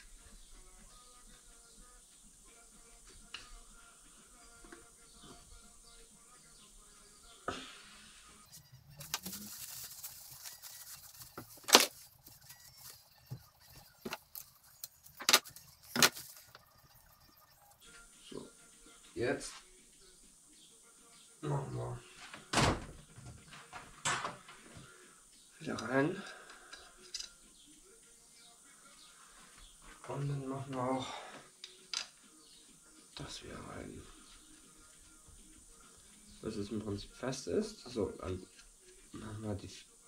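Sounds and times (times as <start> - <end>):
faint background music: 0.0 - 40.0
paper towel rubbing on metal: 7.8 - 17.8
sharp clicks of metal parts: 25.8 - 27.3.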